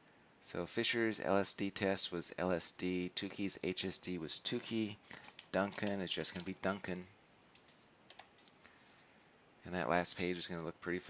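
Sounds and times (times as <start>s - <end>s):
keyboard clicks: 5.2s - 6.6s, 7.5s - 8.6s.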